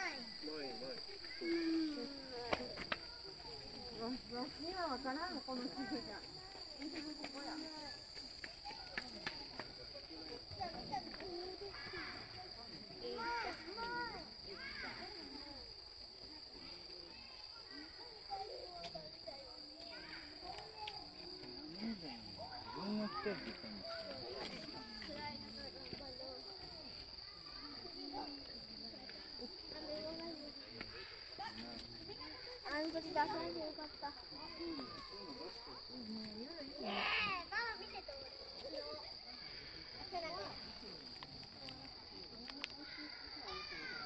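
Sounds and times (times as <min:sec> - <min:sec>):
insects trilling: 0:00.0 - 0:44.0.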